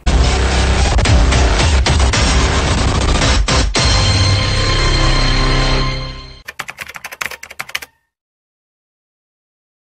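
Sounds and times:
keyboard key clicks: 6.5 - 8.0.

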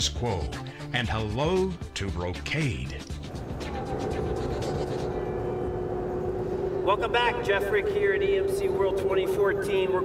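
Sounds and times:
low rumbling noise: 3.2 - 10.0
steady droning hum: 3.2 - 10.0.

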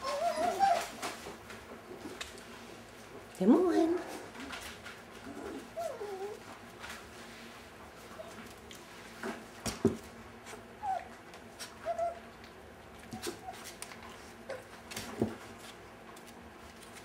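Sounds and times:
puppies whining: 0.0 - 1.2, 5.2 - 6.5, 10.5 - 14.8.

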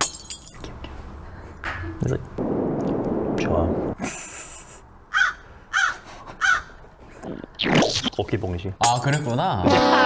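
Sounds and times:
crow cawing: 5.1 - 6.8.

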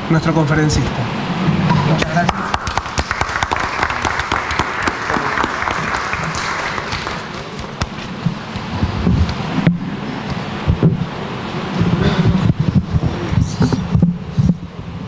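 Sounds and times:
audience applauding: 1.9 - 8.8
microphone handling thumps: 7.6 - 11.1, 11.7 - 14.7.

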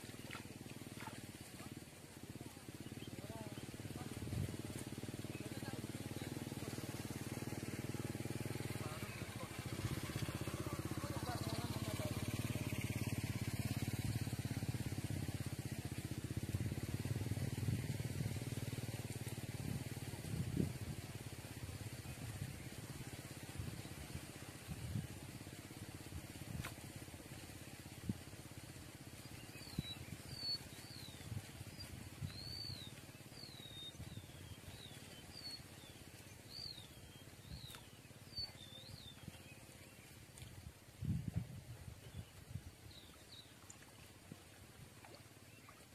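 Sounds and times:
small bird chirping: 29.2 - 41.2.

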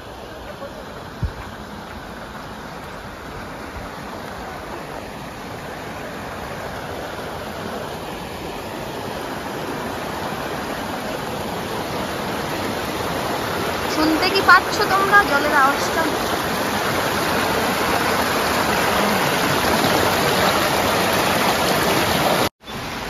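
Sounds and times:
mountain stream rushing over boulders: 0.0 - 23.0.

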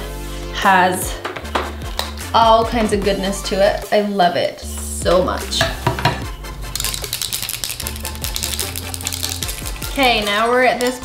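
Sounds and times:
background music with bass line: 0.0 - 3.9, 4.6 - 11.0
aerosol can rattling: 5.8 - 11.0.

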